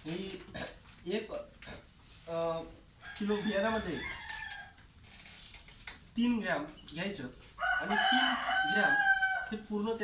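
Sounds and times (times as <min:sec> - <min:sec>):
rooster crowing: 0:03.0 - 0:04.8, 0:07.6 - 0:09.7.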